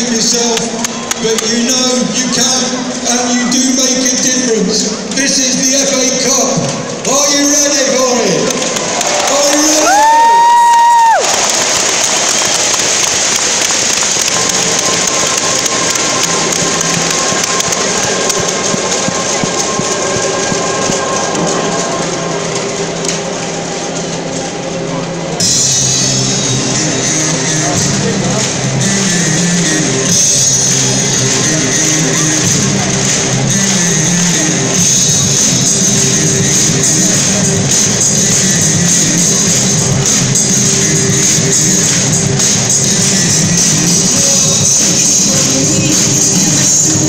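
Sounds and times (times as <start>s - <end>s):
crowd noise: 0.0s - 47.0s
music over loudspeakers: 0.0s - 47.0s.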